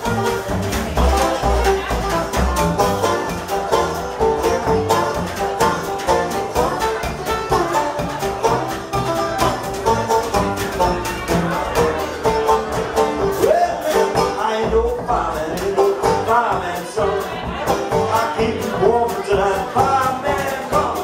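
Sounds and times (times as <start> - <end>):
banjo picking: 0.0 - 21.0
drum kit: 0.0 - 21.0
upright bass: 0.0 - 21.0.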